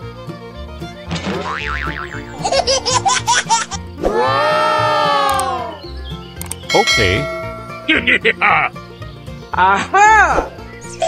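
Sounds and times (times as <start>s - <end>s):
bouncy background music: 0.0s - 11.0s
cartoon boing: 1.5s - 2.4s
baby giggles: 2.3s - 3.8s.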